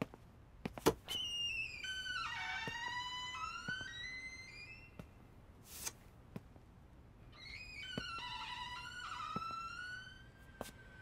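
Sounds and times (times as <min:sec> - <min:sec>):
door creaking open: 0:01.0 - 0:05.1, 0:07.3 - 0:11.0.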